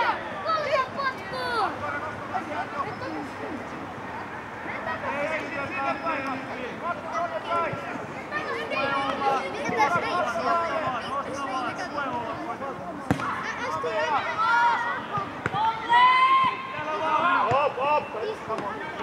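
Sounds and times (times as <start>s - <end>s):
people shouting and calling: 4.6s - 19.0s.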